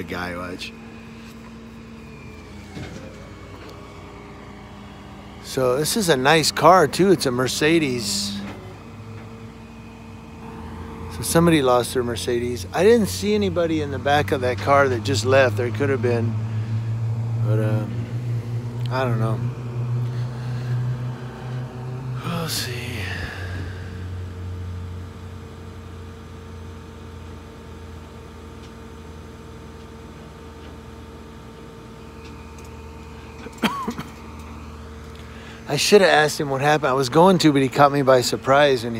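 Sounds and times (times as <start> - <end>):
faint steady whine: 0.0 - 38.9
vehicle engines idling: 0.0 - 38.9.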